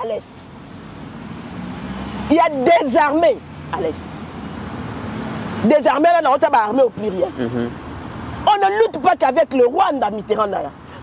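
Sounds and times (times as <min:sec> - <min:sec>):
road traffic rushing: 0:00.0 - 0:11.0
vehicle engine approaching: 0:06.9 - 0:08.4.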